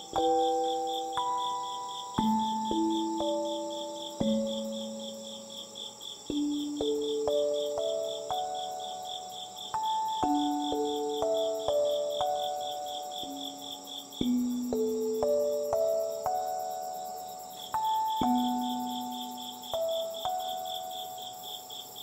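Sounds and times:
crickets trilling: 0.0 - 22.0
gentle background music: 0.0 - 22.0
rapid pulsing cricket chirp: 0.0 - 22.0.

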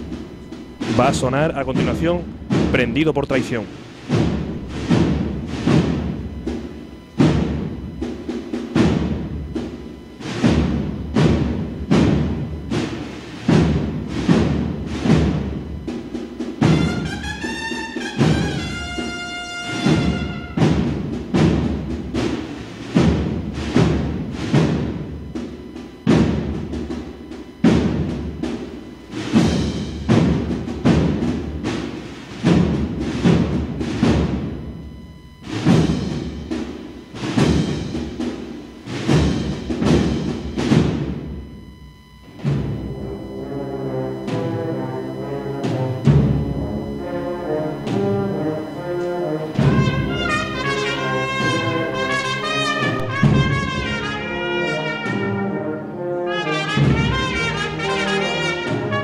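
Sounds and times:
heavy drum strokes: 0.0 - 59.0
marching band playing: 0.0 - 59.0.

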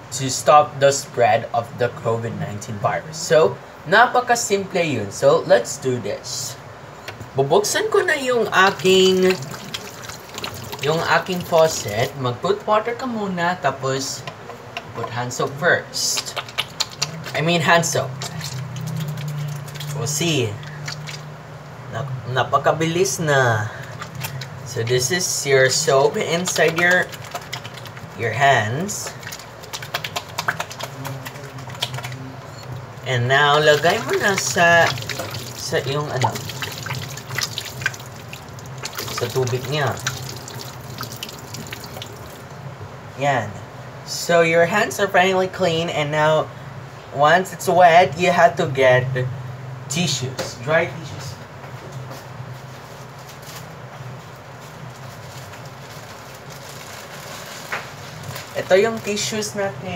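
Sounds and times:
steady low hum: 0.0 - 59.9
soapy hands rubbing: 8.4 - 12.2, 16.0 - 21.3, 23.8 - 42.5.

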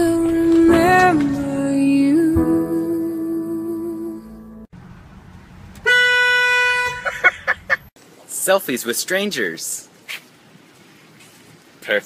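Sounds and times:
music track: 0.0 - 4.7
car horn blast and toots: 5.8 - 7.3.

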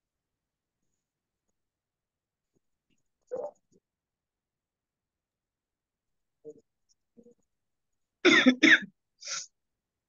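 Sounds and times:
person coughing: 8.3 - 8.9.

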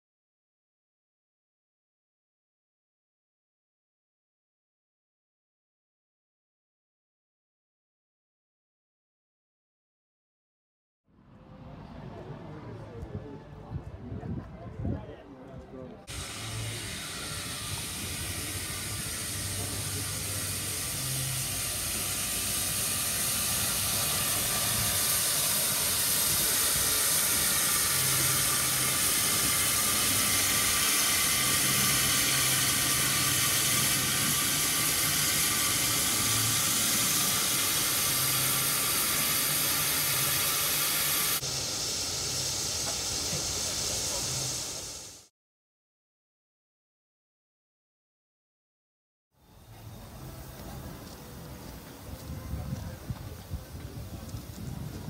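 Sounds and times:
steam hissing from locomotive: 16.1 - 45.3, 49.5 - 55.0.

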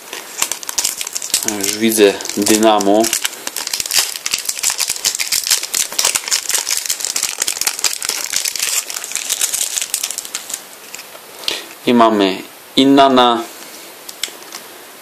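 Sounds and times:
foil packet crinkling: 0.0 - 11.2.

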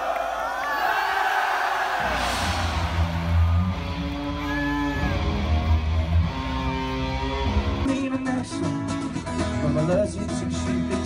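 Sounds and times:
crowd yelling and cheering: 0.0 - 7.9
rock band playing live: 2.4 - 11.0.

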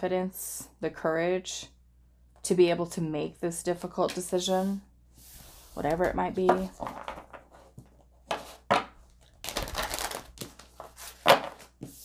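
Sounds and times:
cards shuffling on wooden table: 5.2 - 12.0.

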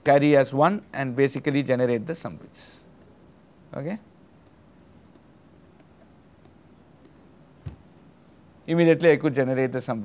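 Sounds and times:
stylus tapping and scratching on tablet: 2.2 - 7.9.

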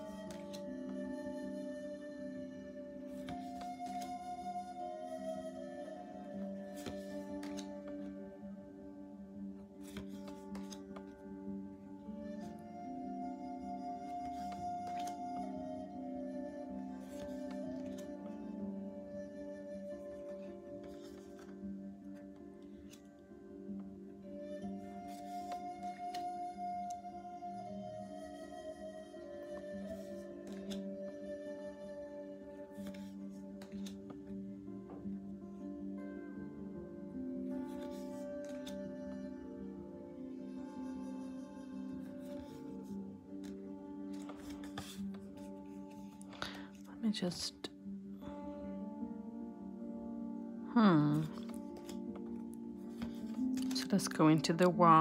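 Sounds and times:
slow ambient music: 0.0 - 55.0
cards sliding and rustling: 0.1 - 0.7, 3.2 - 4.1, 6.7 - 8.1, 9.8 - 11.2, 14.1 - 15.2, 17.0 - 18.3, 20.2 - 23.1, 25.1 - 26.2, 29.9 - 30.9, 32.8 - 34.3, 37.7 - 38.8, 42.2 - 46.9, 51.3 - 53.8
cards clicking: 6.8 - 7.9, 9.8 - 11.1, 29.9 - 30.8, 43.4 - 46.8, 51.3 - 52.3.

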